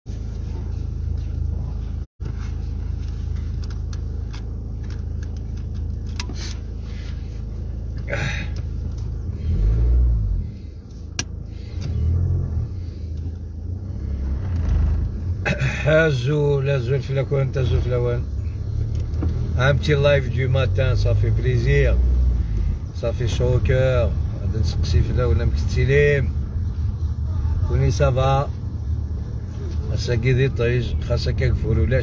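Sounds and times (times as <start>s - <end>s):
car cabin engine rumble: 0.1s - 32.0s
seatbelt rustling and clicking: 2.2s - 7.2s.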